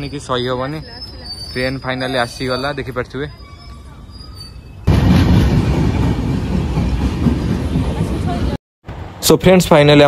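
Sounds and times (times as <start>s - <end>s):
train wheels rumbling on rails: 0.8s - 8.6s.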